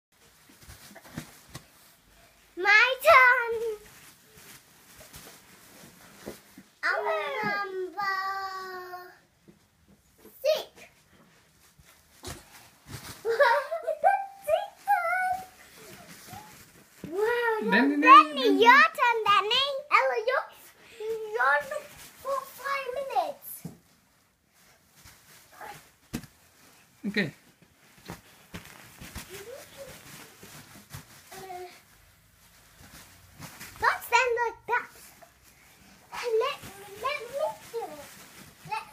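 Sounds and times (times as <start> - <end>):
child's voice: 2.6 - 3.9, 6.8 - 9.2, 10.2 - 10.9, 13.3 - 23.8, 29.3 - 30.0, 31.3 - 31.8, 33.8 - 35.0, 36.1 - 38.9.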